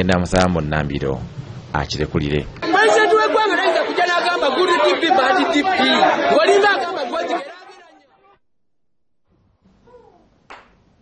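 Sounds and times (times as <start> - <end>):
voices talking: 1.8 - 8.3.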